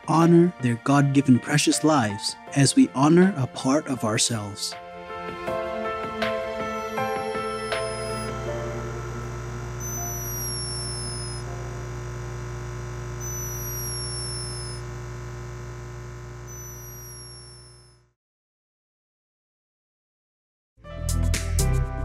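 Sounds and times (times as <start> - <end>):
soft background music: 0.0 - 11.6
hummingbird snoring squeak: 6.6 - 8.5, 9.8 - 11.5, 13.2 - 14.8, 16.4 - 17.9.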